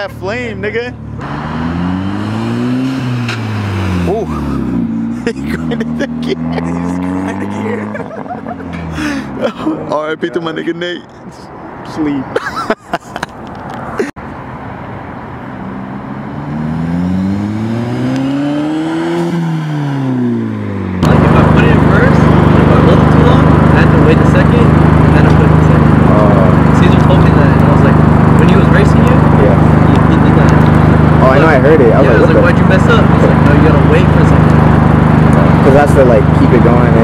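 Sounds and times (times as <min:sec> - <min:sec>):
car accelerating past: 0:01.2 - 0:09.0, 0:15.6 - 0:37.0.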